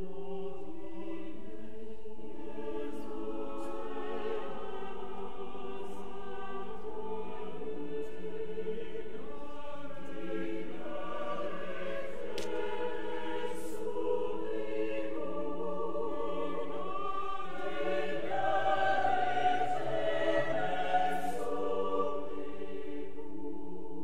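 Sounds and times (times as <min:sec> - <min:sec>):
choir singing held chords: 0:00.0 - 0:24.0.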